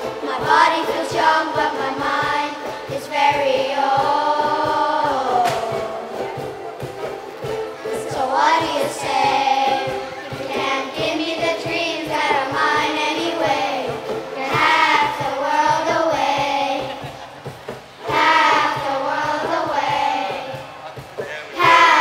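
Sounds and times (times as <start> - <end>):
children's choir singing: 0.0 - 22.0
ukuleles strumming: 0.0 - 22.0.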